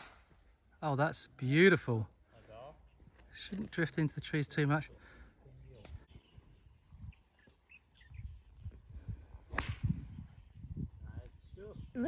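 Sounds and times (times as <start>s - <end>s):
faint bird chirps: 5.5s - 8.9s
golf club striking ball: 9.5s - 10.0s.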